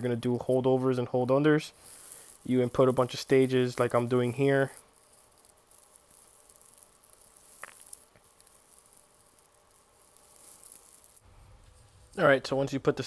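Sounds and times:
faint hiss: 0.0 - 13.0.

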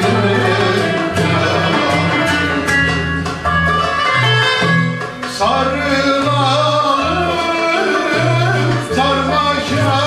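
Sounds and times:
man singing: 0.0 - 3.0, 5.2 - 10.0
plucked strings: 0.0 - 10.0
repeating bass line: 0.0 - 10.0.

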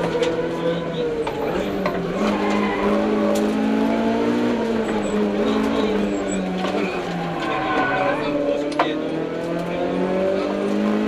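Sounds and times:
car engine at high revs: 0.0 - 11.0.

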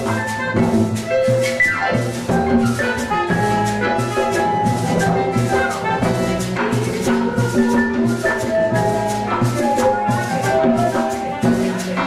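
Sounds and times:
drum kit and hand percussion: 0.0 - 12.0
keyboard and horn notes: 0.0 - 12.0
live latin band playing: 0.0 - 12.0.

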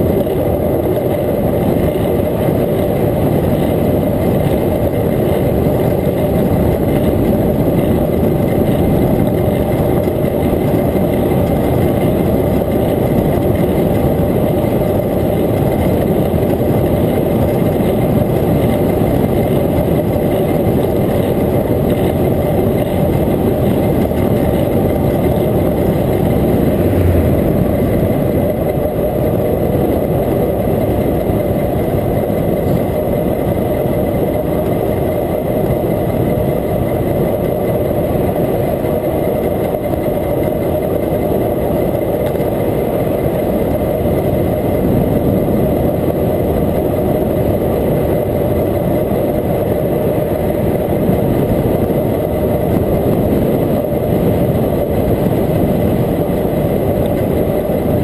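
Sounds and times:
tyre noise on asphalt: 0.0 - 58.0
wind buffeting microphone: 0.0 - 58.0.

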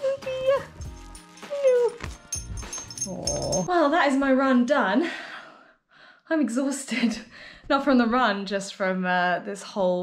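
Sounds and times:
dog whining: 2.8 - 3.7.

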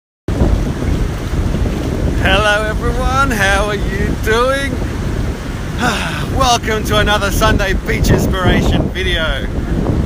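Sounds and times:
surf breaking: 0.3 - 10.0
wind buffeting microphone: 0.3 - 10.0.

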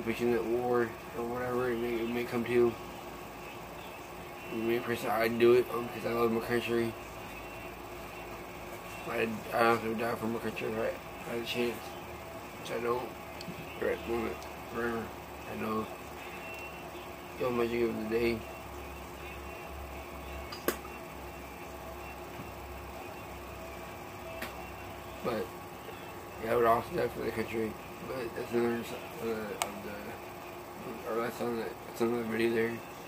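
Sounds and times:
air conditioner hiss and hum: 0.0 - 33.0.

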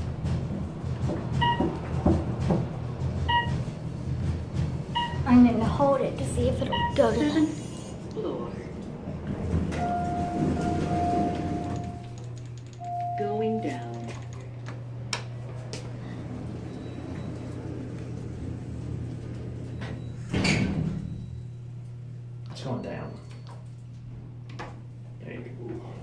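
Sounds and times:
elevator electronic tone: 0.0 - 25.0
elevator low hum: 0.0 - 26.0.

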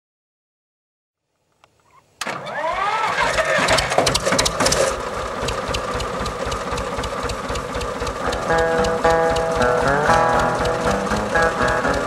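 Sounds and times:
electric starter motor whining: 2.2 - 12.0
tractor engine thumping: 2.2 - 12.0.

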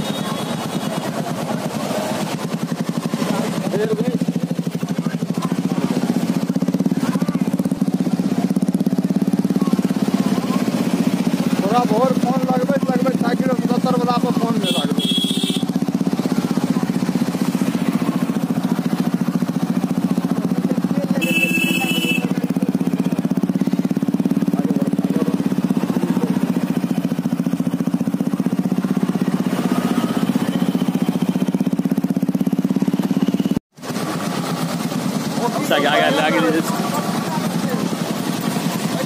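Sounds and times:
motorcycle engines running: 0.0 - 39.0
short horn beeps: 14.6 - 15.7, 21.2 - 22.3.

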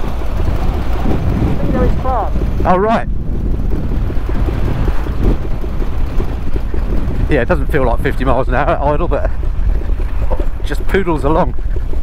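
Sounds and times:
motorcycle engine exhaust beats: 0.0 - 12.0
wind buffeting microphone: 0.0 - 12.0.

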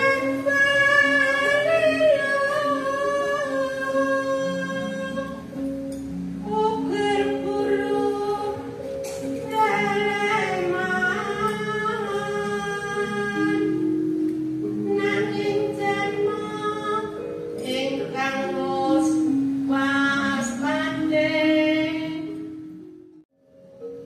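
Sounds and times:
woman singing into a microphone: 0.0 - 5.5, 6.4 - 13.9, 14.8 - 22.5.

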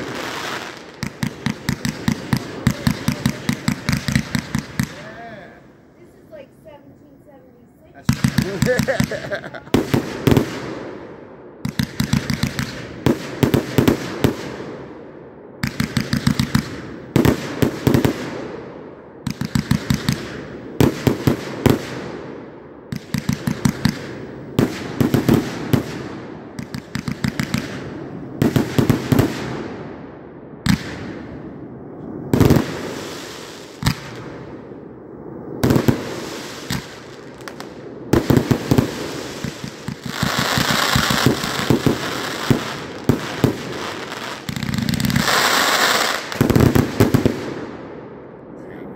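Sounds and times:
firework sharp bangs: 0.0 - 6.8, 7.8 - 48.2
firework hiss: 0.0 - 6.9, 8.0 - 10.7, 32.4 - 34.2, 35.6 - 47.4.

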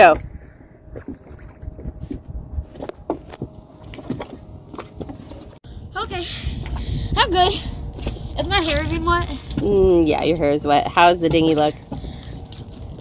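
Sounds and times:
water splashing and sloshing: 0.0 - 13.0.

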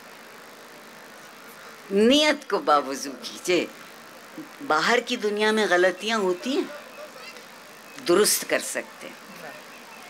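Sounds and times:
faint background hiss: 0.0 - 10.0
outdoor ambience: 0.0 - 10.0.

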